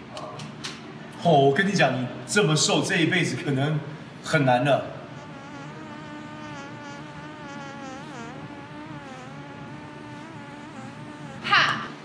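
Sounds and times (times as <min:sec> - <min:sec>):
mosquito whining: 0:05.0 - 0:12.0.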